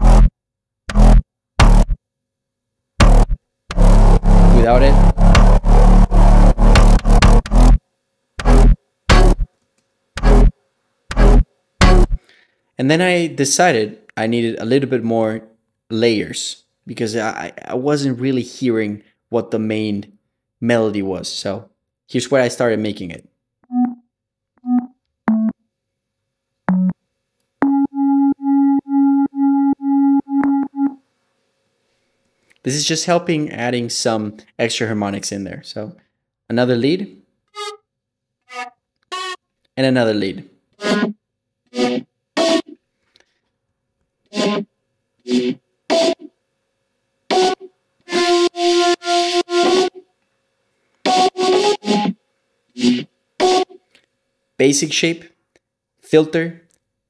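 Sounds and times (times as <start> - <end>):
synthesizer lead notes: 0.0 - 0.3, 0.9 - 2.0, 3.0 - 7.8, 8.4 - 9.5, 11.1 - 12.2, 23.7 - 24.0, 24.6 - 25.5, 26.7 - 27.0, 27.6 - 31.0.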